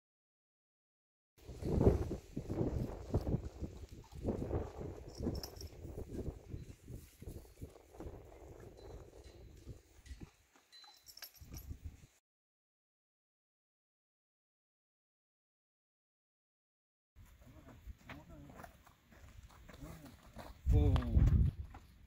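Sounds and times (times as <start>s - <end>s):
metal buckle rattling: 5.0s - 5.9s, 9.5s - 11.9s.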